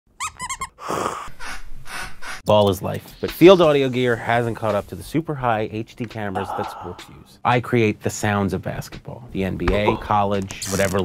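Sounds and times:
squeaky toy squeaks: 0.1 - 0.8.

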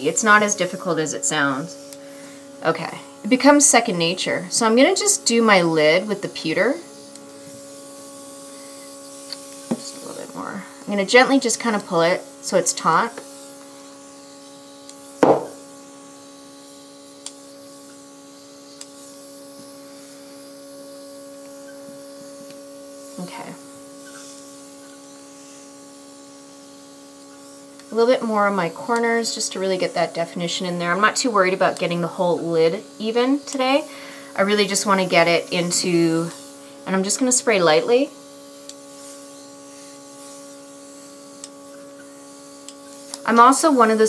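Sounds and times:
airbrush hissing: 0.0 - 44.0
compressor humming: 0.0 - 44.0.

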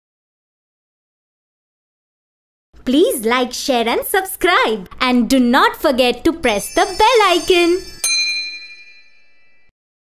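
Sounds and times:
bell-like ding: 6.4 - 9.7.

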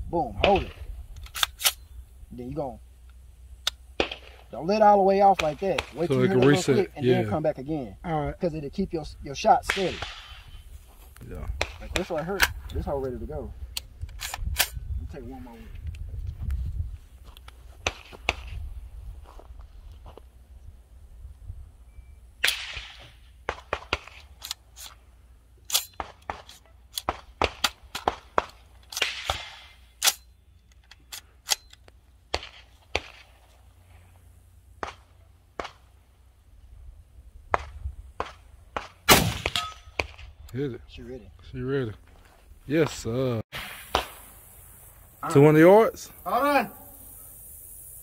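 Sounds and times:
rifle gunshots: 37.5 - 40.3.

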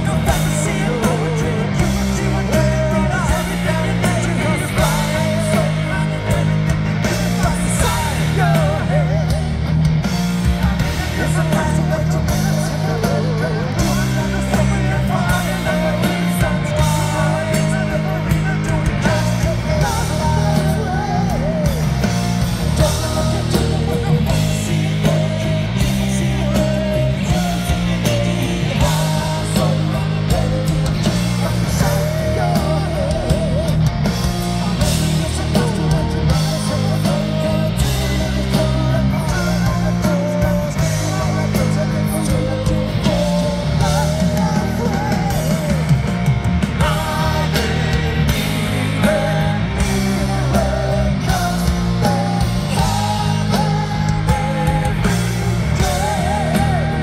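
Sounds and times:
man singing lead vocal: 0.0 - 57.0
metal band playing live: 0.0 - 57.0.

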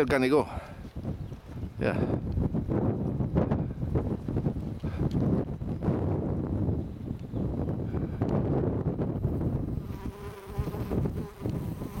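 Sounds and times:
wind rumble on microphone: 0.0 - 12.0
flying insect buzzing: 9.2 - 12.0.

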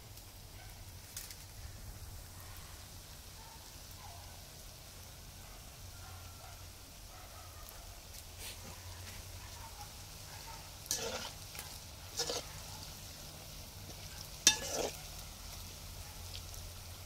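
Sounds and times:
oil sizzling in a wok: 0.0 - 17.0.

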